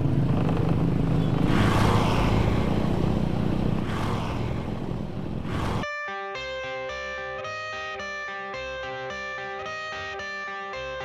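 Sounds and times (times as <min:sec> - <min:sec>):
motorcycle engine running: 0:00.0 - 0:05.5
road and air noise: 0:00.0 - 0:06.0.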